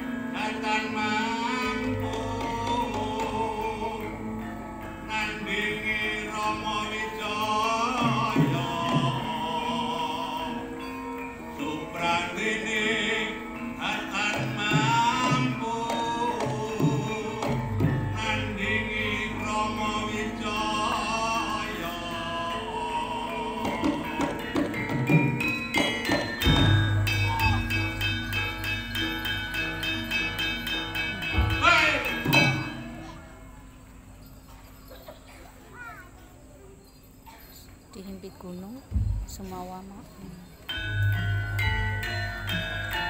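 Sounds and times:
person singing long notes: 0.0 - 28.2
low sustained gong tones: 0.0 - 35.0, 38.1 - 43.0
gamelan ensemble: 0.0 - 36.5, 39.8 - 43.0
metallophone strokes ringing: 22.5 - 35.6, 39.5 - 43.0.

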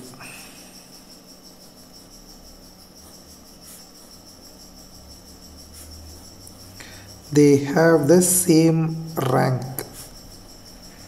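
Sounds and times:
high-pitched pulsing chirring: 0.0 - 11.0
marker strokes on paper: 3.0 - 4.2, 5.6 - 6.4, 9.8 - 10.2.

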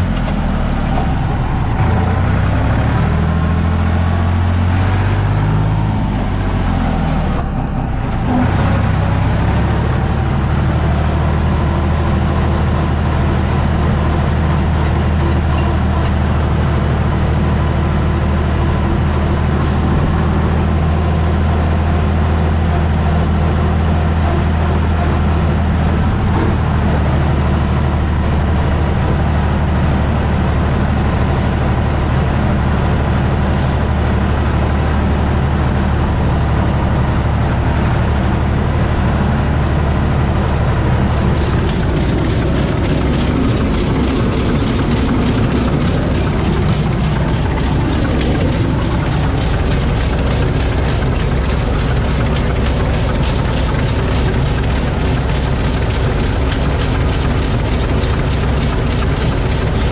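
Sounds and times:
tractor diesel engine running: 0.0 - 59.9.

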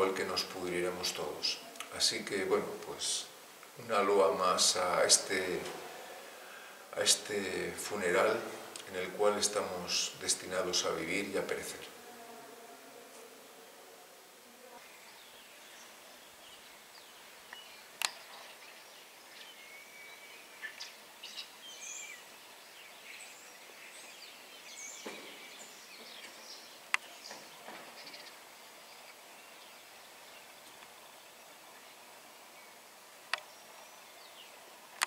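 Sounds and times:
small birds chirping: 14.7 - 35.0.

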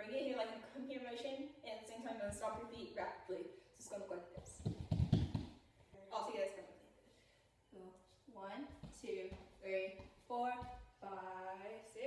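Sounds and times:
feet stamping on wooden floor: 4.4 - 5.6.

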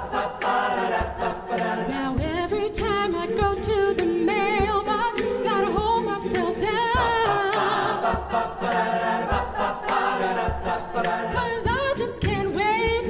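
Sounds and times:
a cappella group singing chords: 0.0 - 13.0
vocal percussion beat: 0.0 - 13.0.

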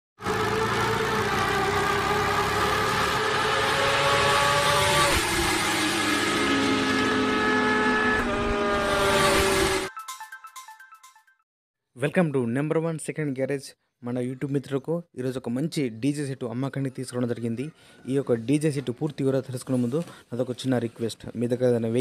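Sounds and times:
motorcycle engine: 0.2 - 9.9.

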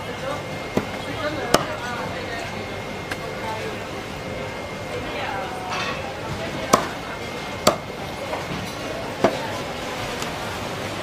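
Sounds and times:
cleaver chopping fish: 0.7 - 1.8, 6.4 - 7.0, 7.6 - 8.0.

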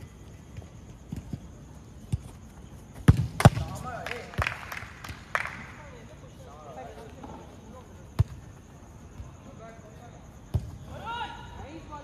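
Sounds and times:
football kick thuds: 3.0 - 3.8
distant players shouting: 10.8 - 12.0.

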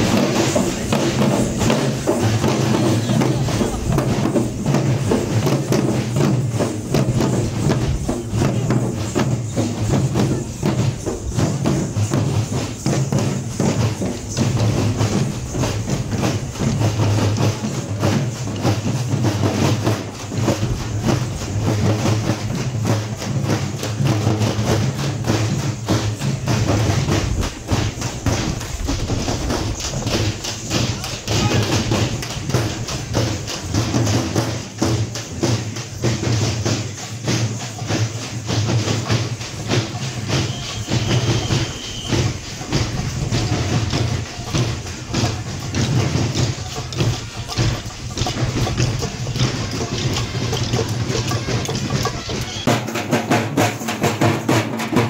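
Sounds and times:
crowd voices: 0.0 - 53.6
frame drums beaten with sticks: 0.0 - 55.0.

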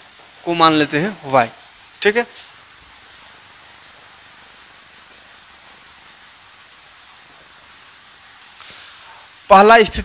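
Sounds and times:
faint room tone hiss: 0.0 - 10.0.

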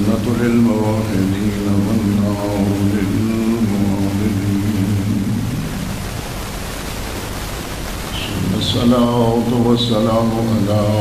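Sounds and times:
man reciting: 0.0 - 6.0, 8.1 - 11.0
background hiss: 0.0 - 11.0.

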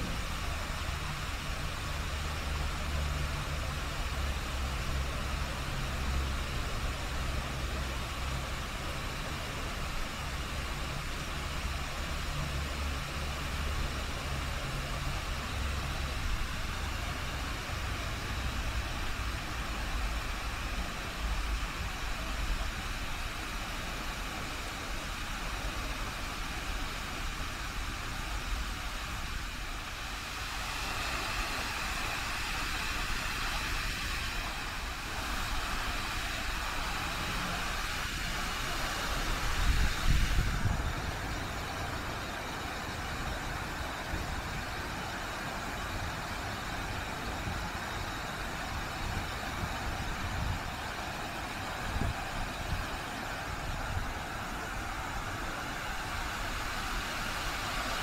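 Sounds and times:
even hiss: 0.0 - 58.0.

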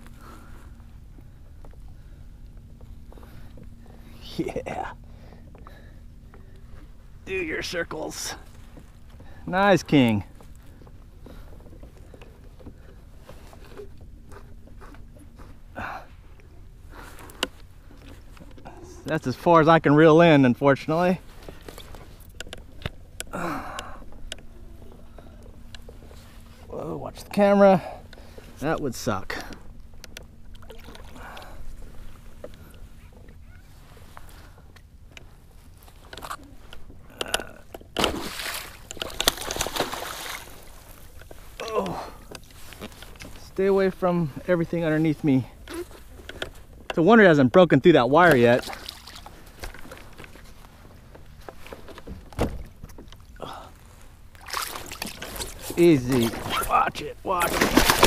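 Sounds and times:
water rumbling around kayak hull: 0.0 - 58.0
fish thrashing in water: 37.9 - 42.4, 54.3 - 58.0
fishing gear clicks and taps: 45.7 - 47.1.

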